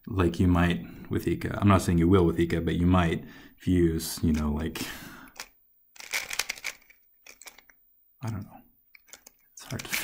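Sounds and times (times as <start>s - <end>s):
puzzle cube plastic clicks: 5.3s - 10.0s.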